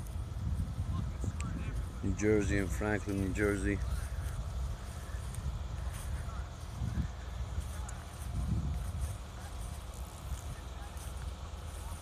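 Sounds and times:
distant engine rumbling: 0.0s - 12.0s
wind buffeting microphone: 0.0s - 12.0s.

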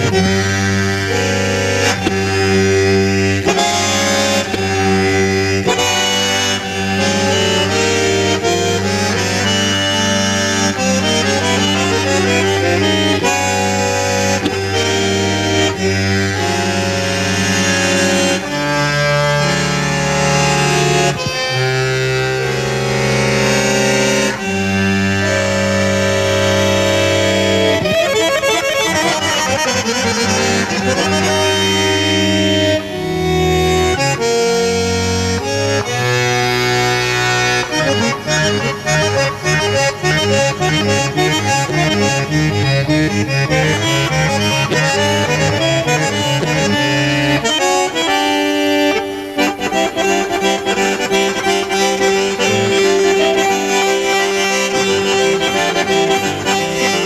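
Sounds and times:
piano accordion improvising: 0.0s - 57.0s.

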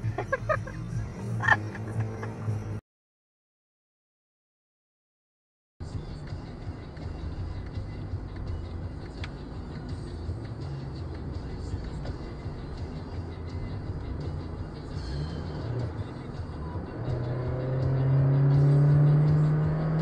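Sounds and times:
car engine and road noise: 0.0s - 2.8s, 5.8s - 20.0s.

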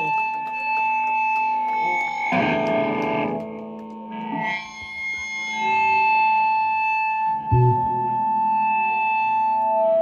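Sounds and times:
distorted electric guitar: 0.0s - 10.0s.

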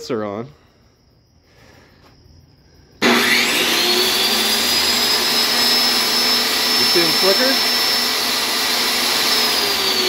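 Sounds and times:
crickets chirring: 0.0s - 3.4s.

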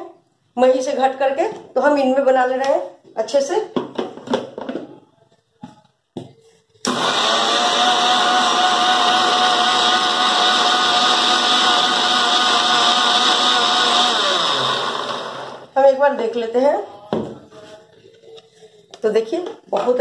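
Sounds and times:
mixer motor whining: 6.8s - 15.8s.

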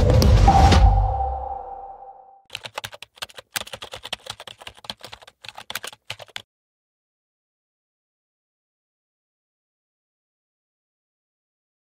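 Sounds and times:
keyboard key clicks: 2.5s - 6.4s.

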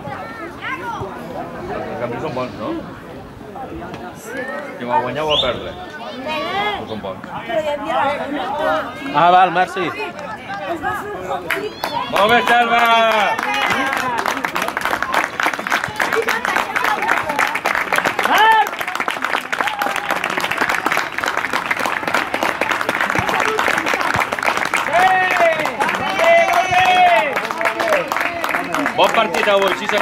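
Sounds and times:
group clapping: 11.4s - 30.0s.

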